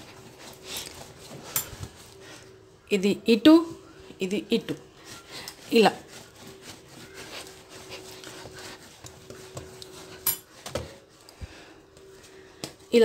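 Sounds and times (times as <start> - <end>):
hands rolling dough on stone: 4.6 - 13.0.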